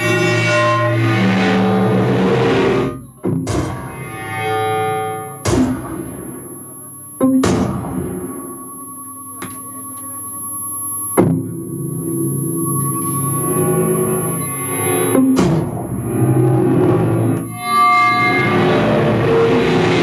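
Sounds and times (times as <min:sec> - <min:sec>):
layered electronic drones: 0:00.0 - 0:20.0.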